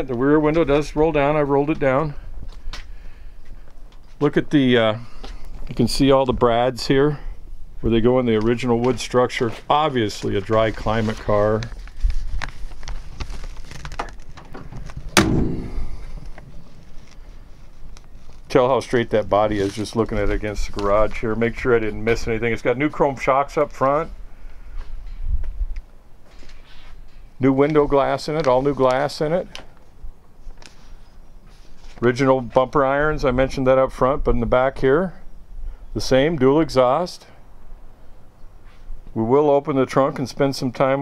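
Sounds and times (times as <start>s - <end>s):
sharp ringing knock: 15.2s - 16.2s
low rumble: 15.2s - 16.6s
wind buffeting microphone: 24.7s - 25.8s.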